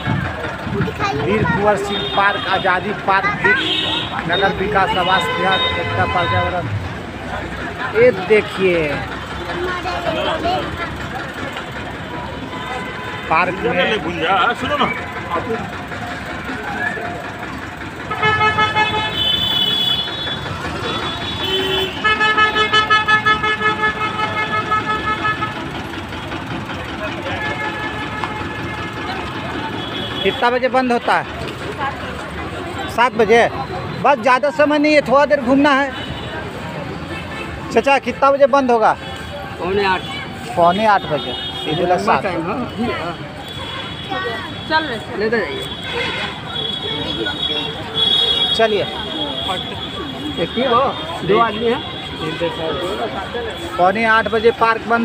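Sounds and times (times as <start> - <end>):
vehicle horns honking: 0.0 - 10.8, 11.5 - 16.6, 18.0 - 55.0
people talking: 0.0 - 19.6, 25.8 - 55.0
traffic noise: 0.0 - 55.0.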